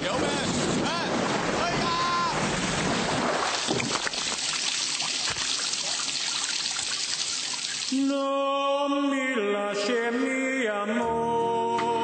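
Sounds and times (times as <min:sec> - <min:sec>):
water rushing: 0:00.0 - 0:08.1.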